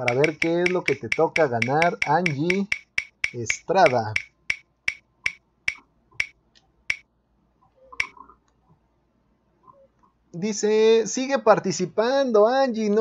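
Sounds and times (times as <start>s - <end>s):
prize wheel ticking: 0.0s - 7.0s.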